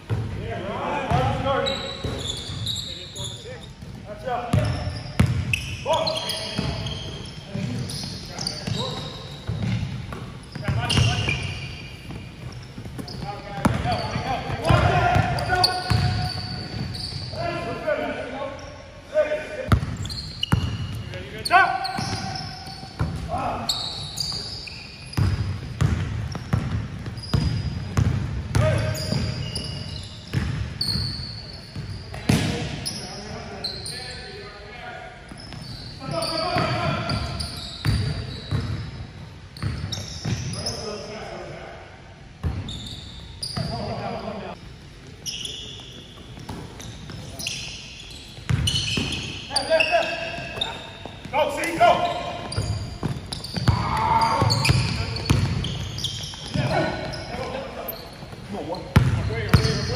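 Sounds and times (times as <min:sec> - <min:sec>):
sneakers squeaking: 0:00.0 - 0:41.6, 0:42.3 - 0:59.9
basketball bouncing: 0:03.8 - 0:05.5, 0:09.4 - 0:11.4, 0:12.1 - 0:17.0, 0:19.7 - 0:21.0, 0:22.0 - 0:23.3, 0:25.2 - 0:29.3, 0:30.3 - 0:31.0, 0:48.4 - 0:49.2, 0:52.5 - 0:57.2, 0:58.9 - 0:59.9
players calling out: 0:10.5 - 0:25.3, 0:47.4 - 0:59.9.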